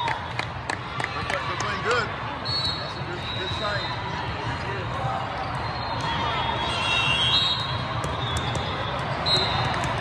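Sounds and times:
crowd chatter: 0.0 - 10.0
balls bouncing and thudding: 7.8 - 10.0.

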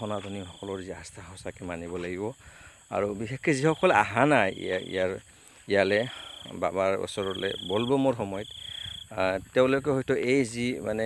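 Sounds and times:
cricket trilling: 0.0 - 11.0
person speaking: 2.9 - 8.4.

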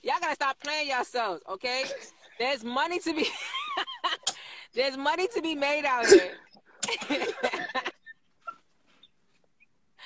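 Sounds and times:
faint squeaky laughter: 7.9 - 9.1.

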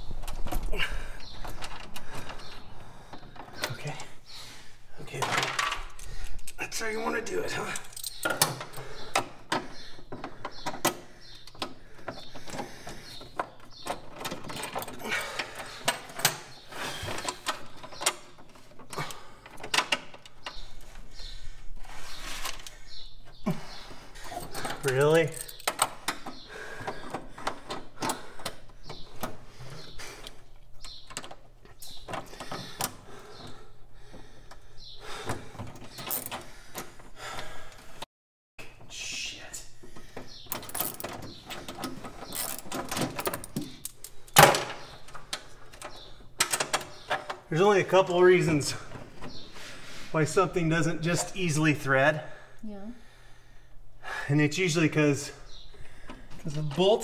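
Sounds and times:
tools clicking and rattling: 0.0 - 4.1, 5.1 - 6.6, 7.5 - 21.0, 24.2 - 33.6, 35.3 - 37.0, 40.2 - 47.5.

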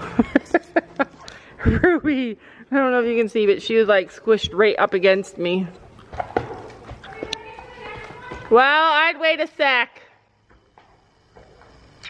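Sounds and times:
hoof steps on dirt: 5.6 - 8.8.

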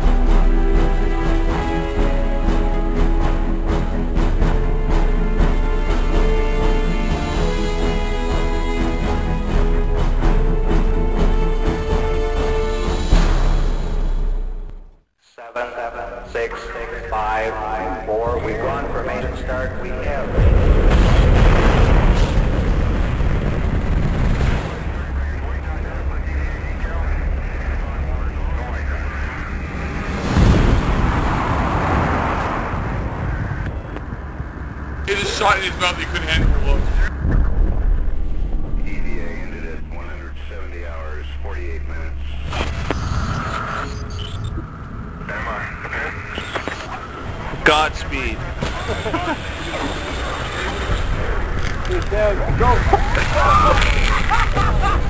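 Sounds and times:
people speaking: 15.2 - 20.7, 24.8 - 30.2, 35.1 - 37.2, 38.8 - 42.6, 45.2 - 55.0
low rumble: 16.0 - 55.0
rocket launch roar: 20.3 - 25.4, 29.5 - 33.9.

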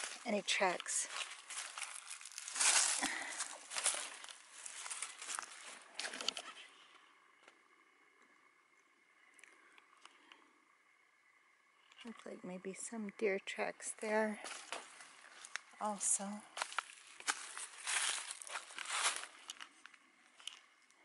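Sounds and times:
footsteps crunching through dry leaves: 0.0 - 6.4, 16.6 - 19.6.

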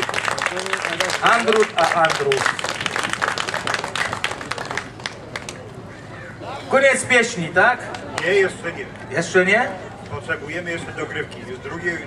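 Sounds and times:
audience applauding: 0.0 - 5.6.

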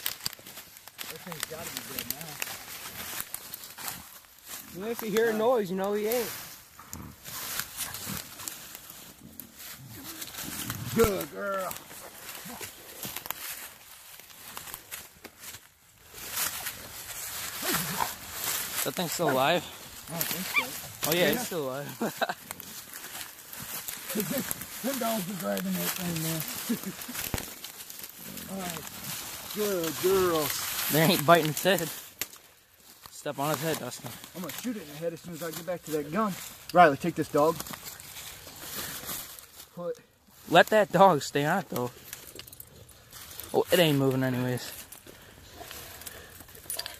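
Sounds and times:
rustling of dry leaves: 0.0 - 46.9
man speaking: 4.7 - 6.3, 10.8 - 11.8, 18.8 - 22.0, 24.1 - 26.8, 29.5 - 31.9, 39.8 - 41.9, 43.5 - 44.8.

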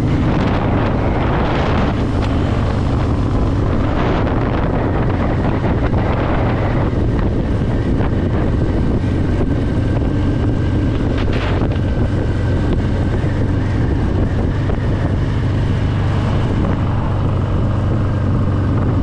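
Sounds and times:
motorcycle engine cruising: 0.0 - 19.0
wind buffeting microphone: 0.0 - 19.0.

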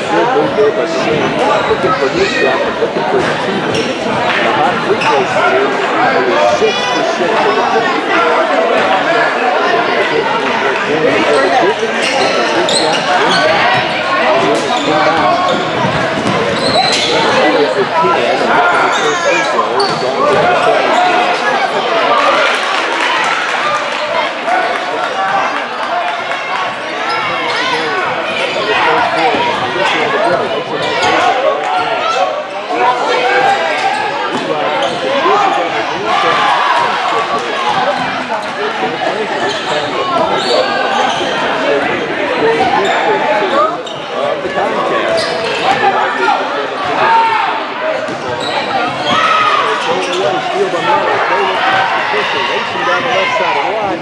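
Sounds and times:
shouts and chatter echoing: 0.0 - 54.0.

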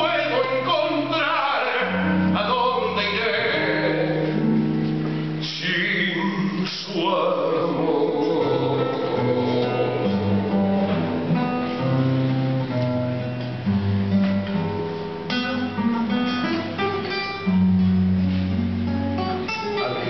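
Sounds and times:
acoustic guitar tango: 0.0 - 20.0.

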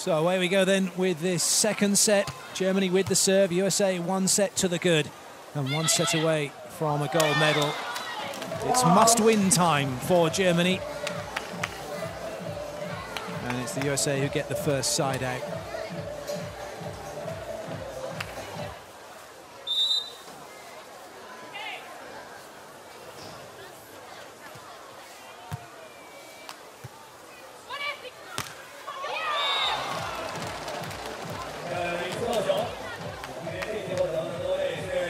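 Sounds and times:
crowd murmur: 5.2 - 35.0
arena music with thumping beat: 8.4 - 18.8, 29.8 - 35.0
referee's whistle blast: 19.6 - 20.2.

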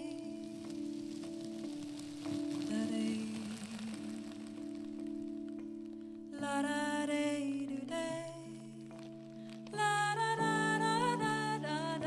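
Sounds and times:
plastic bag crinkling: 0.0 - 6.3
keyboard sustained chords: 0.0 - 12.0.

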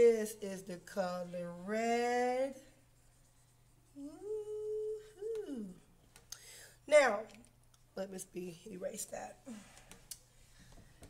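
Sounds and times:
woman humming: 4.0 - 5.9.

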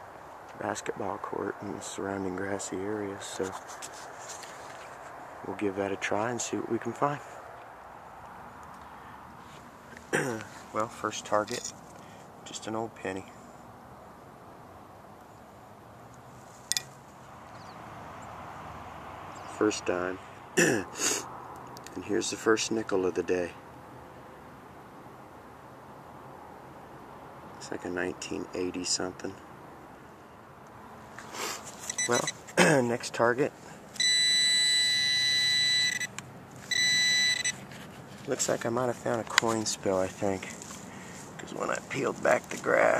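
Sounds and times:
faint outdoor hiss: 0.0 - 42.9
pinpointer high-pitched alert tone: 31.9 - 32.4, 34.0 - 36.1, 36.7 - 37.6.

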